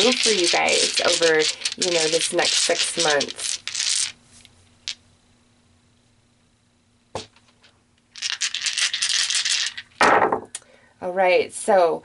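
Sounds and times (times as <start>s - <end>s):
dice clattering on table: 0.0s - 4.2s, 8.2s - 10.5s.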